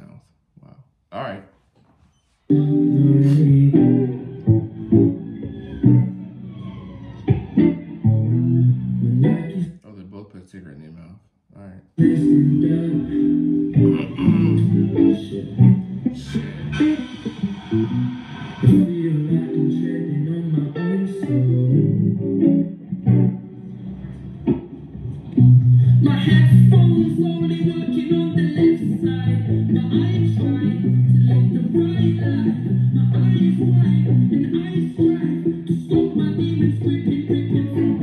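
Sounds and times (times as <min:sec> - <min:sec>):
electric guitar strums and chord: 0:02.5 - 0:09.7, 0:12.0 - 0:38.0
man singing: 0:02.6 - 0:04.5, 0:12.0 - 0:22.1, 0:25.9 - 0:38.0.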